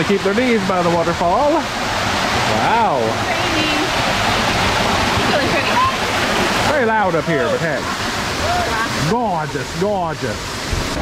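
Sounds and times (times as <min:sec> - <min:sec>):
waterfall rushing into pool: 0:00.0 - 0:11.0.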